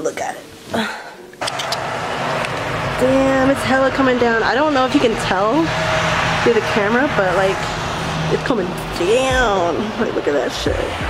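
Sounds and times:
sharp clicks: 0:01.4 - 0:02.7
road traffic rushing: 0:01.4 - 0:11.0.

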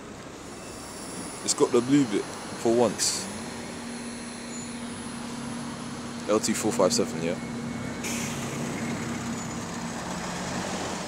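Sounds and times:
bus pulling away: 0:00.0 - 0:11.0
low tone: 0:00.3 - 0:10.4.

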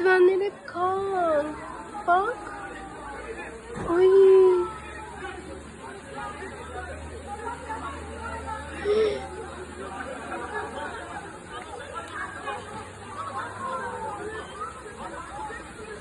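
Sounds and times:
people talking over one another: 0:00.0 - 0:16.0.

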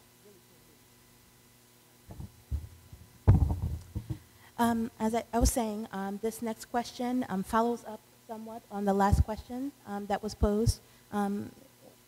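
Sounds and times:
microphone handling thumps: 0:02.1 - 0:04.3.

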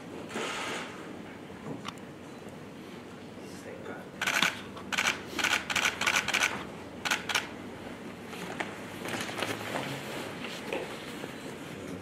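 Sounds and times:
camera shutters clicking: 0:04.2 - 0:07.5.

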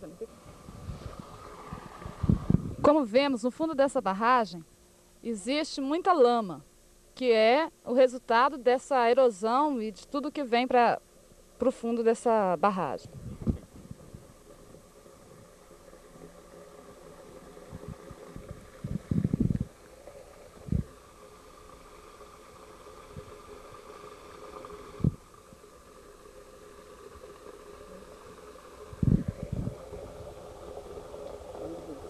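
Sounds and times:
faint steady hum: 0:00.0 - 0:32.0
microphone handling thumps: 0:13.1 - 0:14.2.

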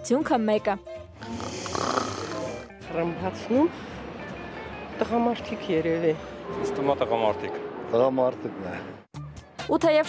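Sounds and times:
person snoring: 0:01.2 - 0:02.7.

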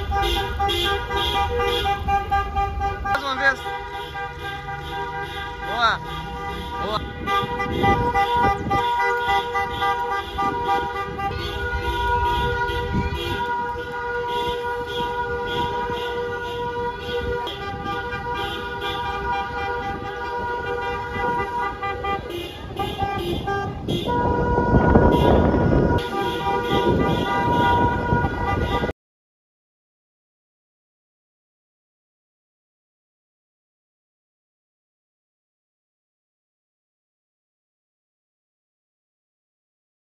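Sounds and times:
car horns honking: 0:00.0 - 0:29.0
rumble of vehicles: 0:00.0 - 0:29.0.

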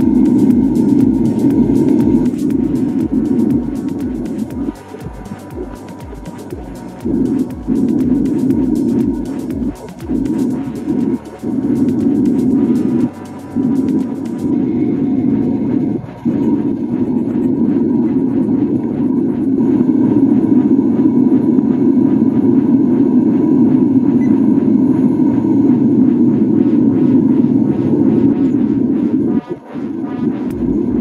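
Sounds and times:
propane burner roaring: 0:00.0 - 0:31.0.

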